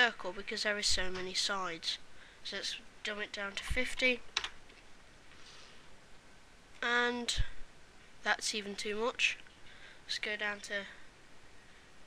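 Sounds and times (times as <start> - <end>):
faint soft hiss: 0.0 - 12.0.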